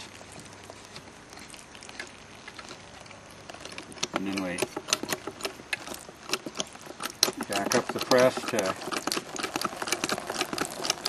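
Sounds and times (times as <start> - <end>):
small ticks and drips: 0.0 - 11.0.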